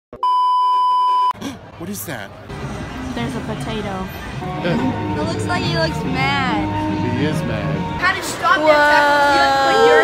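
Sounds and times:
loud steady test tone beep: 0:00.2 - 0:01.3.

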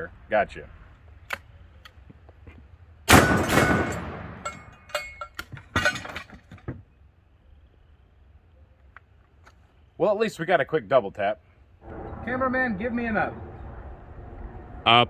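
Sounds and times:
shotgun shots with echo: 0:03.1 - 0:04.4
steel target clanking: 0:03.1 - 0:06.4.

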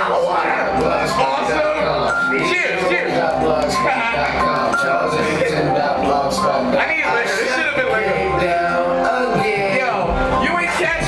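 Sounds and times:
hip-hop beat over sound system: 0:00.0 - 0:11.0
person rapping into a microphone: 0:00.0 - 0:11.0.

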